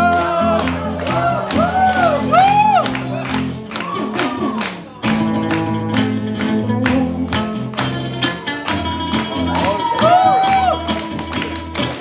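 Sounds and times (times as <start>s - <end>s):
acoustic guitar strumming: 0.0s - 12.0s
plucked lute melody: 5.0s - 12.0s.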